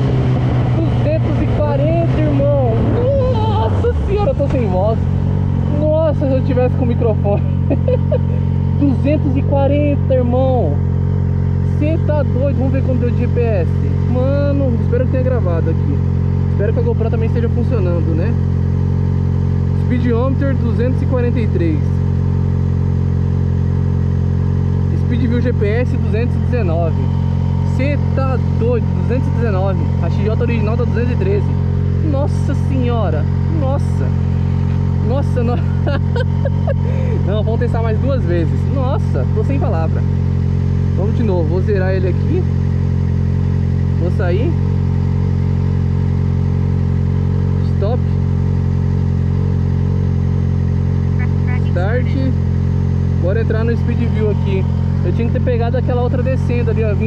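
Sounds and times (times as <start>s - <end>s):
motorcycle engine idling: 0.0s - 57.0s.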